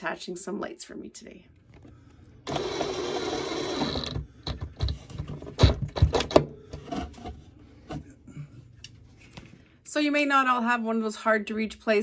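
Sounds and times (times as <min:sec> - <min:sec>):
cordless driver driving screw: 0:02.5 - 0:04.6.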